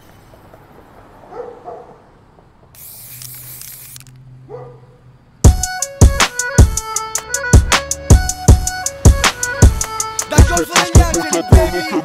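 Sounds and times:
dog barking: 0:01.3 - 0:02.0, 0:04.5 - 0:05.0
spray can hissing: 0:02.8 - 0:04.2.

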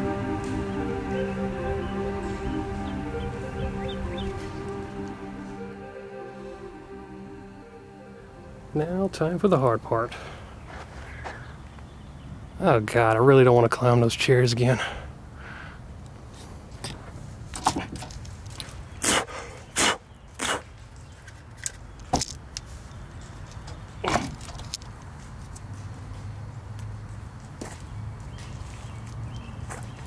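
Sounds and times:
footsteps on concrete and debris: 0:25.0 - 0:30.0.

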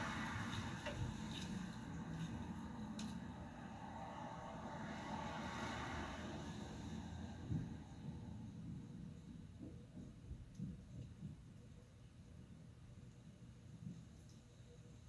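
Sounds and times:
faint rushing noise: 0:00.0 - 0:09.6.

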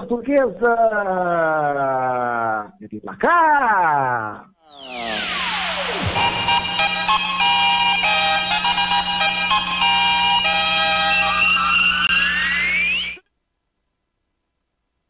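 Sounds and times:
steady low drone: 0:04.7 - 0:12.1
rising synth sweep: 0:04.7 - 0:13.2
synthesized jingle melody: 0:04.7 - 0:13.2.

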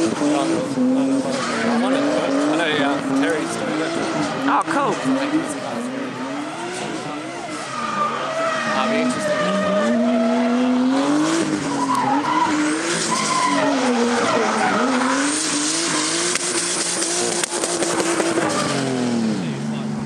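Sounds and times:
car engine at high revs: 0:00.0 - 0:20.0
tyres screeching: 0:00.2 - 0:19.0.

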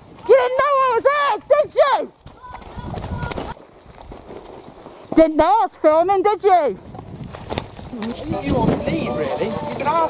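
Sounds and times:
horse hooves walking on stony mud: 0:00.0 - 0:10.0.

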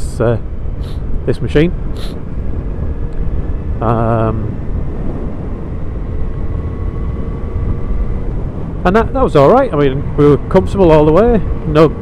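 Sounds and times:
motorcycle engine drone: 0:00.0 - 0:12.0
road rumble: 0:00.0 - 0:12.0
wind buffeting microphone: 0:00.4 - 0:12.0.

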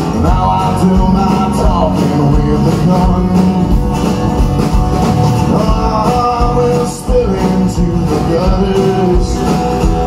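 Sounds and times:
amplified live guitar music: 0:00.0 - 0:10.0.

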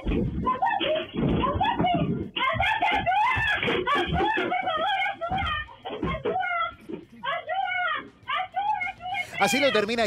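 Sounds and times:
woman screaming frantically: 0:00.4 - 0:09.5.

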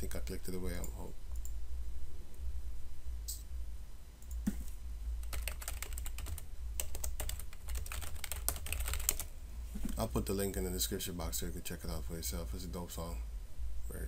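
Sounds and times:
computer keyboard typing: 0:05.2 - 0:09.3.

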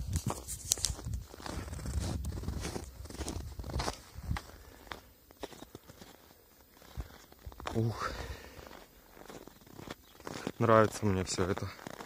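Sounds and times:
bare feet running on snow: 0:00.2 - 0:12.0.

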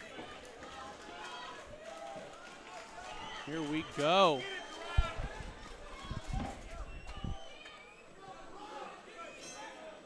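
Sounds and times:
people talking and calling out: 0:00.0 - 0:10.0.

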